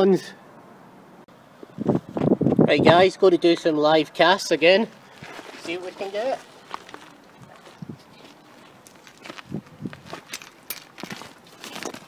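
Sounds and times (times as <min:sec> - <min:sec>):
footsteps on stones: 0:05.0 - 0:12.0.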